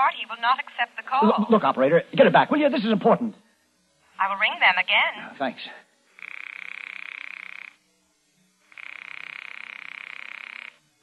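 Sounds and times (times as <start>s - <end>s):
telephone buzzing ring: 6.0s - 8.0s, 8.6s - 11.0s.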